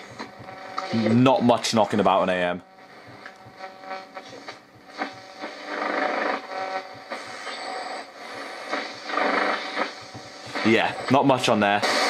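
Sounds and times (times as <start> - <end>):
radio static hissing: 0.0 - 12.0.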